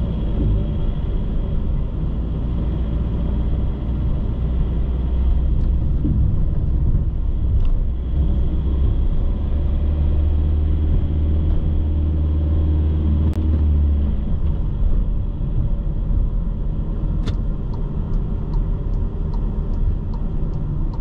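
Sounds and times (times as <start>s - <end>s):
car road and engine rumble: 0.0s - 21.0s
light ticks: 17.2s - 21.0s.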